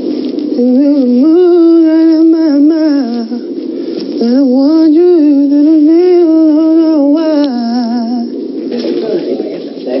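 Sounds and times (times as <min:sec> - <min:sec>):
quiet murmur: 0:00.0 - 0:10.0
woman humming: 0:00.6 - 0:03.5, 0:04.2 - 0:08.3.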